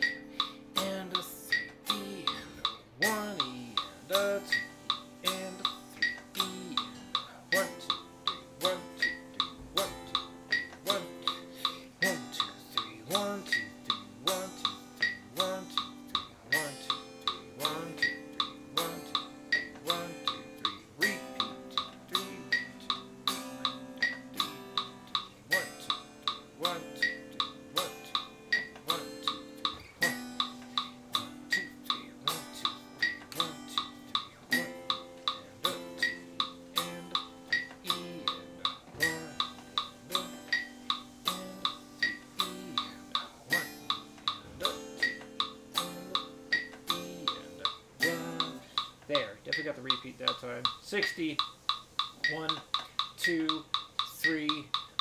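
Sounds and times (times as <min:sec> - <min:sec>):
electric guitar strumming chords: 0:00.0 - 0:55.0
metronome clicks: 0:00.0 - 0:55.0.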